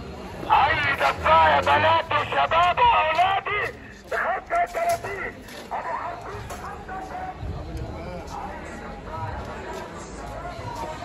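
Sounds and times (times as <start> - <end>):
scattered voices in street market: 0.0 - 11.0.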